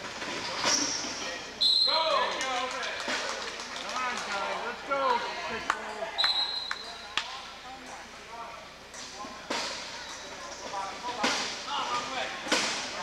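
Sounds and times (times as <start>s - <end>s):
referee whistle: 1.6s - 2.1s, 6.2s - 7.0s.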